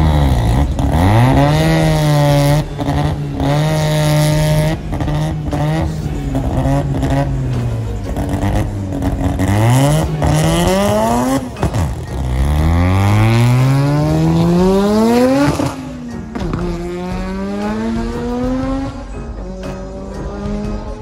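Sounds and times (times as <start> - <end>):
drag car engine revving: 0.0 - 21.0.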